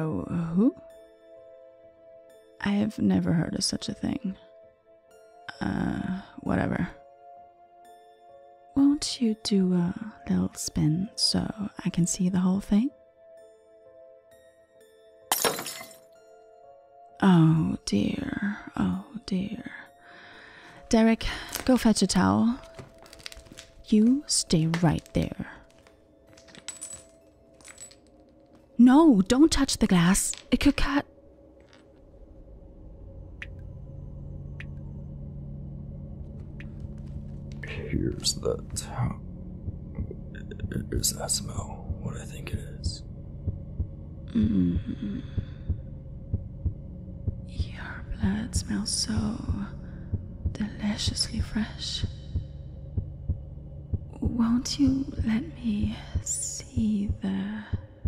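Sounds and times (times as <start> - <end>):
glass shards clinking: 15.3 - 16.0, 26.3 - 28.5
faint low hum: 32.5 - 58.0
heartbeat thumps: 37.6 - 58.0.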